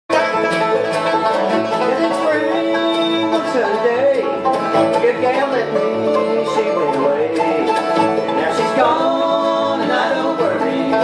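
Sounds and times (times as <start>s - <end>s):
banjo: 0.1s - 11.0s
bluegrass band playing: 0.1s - 11.0s
upright bass: 0.1s - 11.0s.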